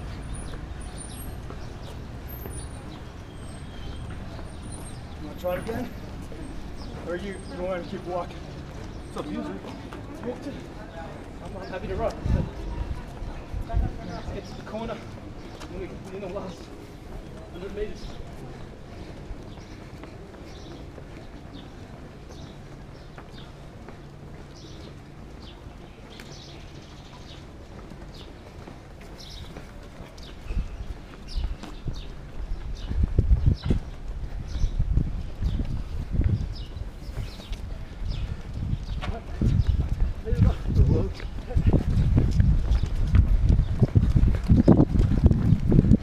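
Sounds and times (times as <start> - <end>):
boots on pavement: 0.0 - 46.0
microphone thumps and rumble: 31.4 - 37.3, 38.1 - 46.0.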